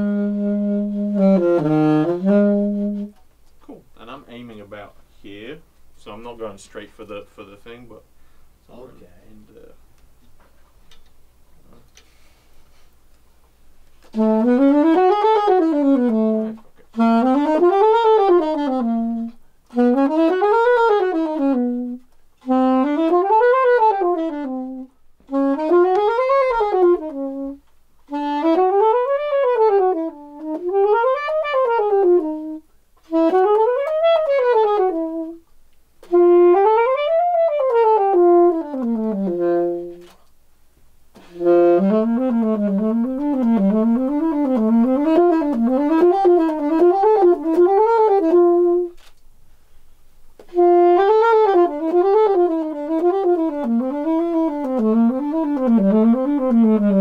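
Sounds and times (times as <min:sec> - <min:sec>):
alto saxophone scale runs: 0:00.0 - 0:03.2, 0:14.1 - 0:35.4, 0:36.0 - 0:40.2, 0:41.2 - 0:49.1, 0:50.4 - 0:57.0.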